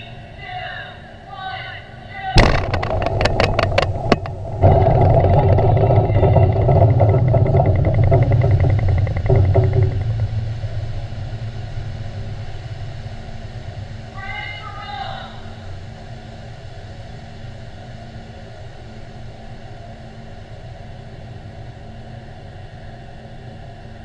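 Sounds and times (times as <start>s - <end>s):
sharp rattling knocks: 2.4s - 14.0s
low explosion rumble: 2.4s - 14.1s.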